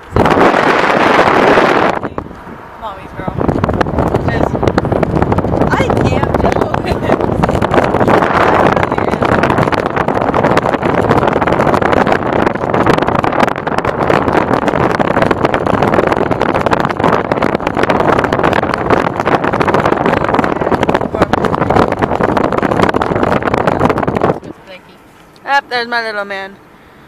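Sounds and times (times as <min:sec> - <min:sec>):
wind rush buffeting microphone: 0:00.0 - 0:26.7
road noise: 0:00.0 - 0:27.0.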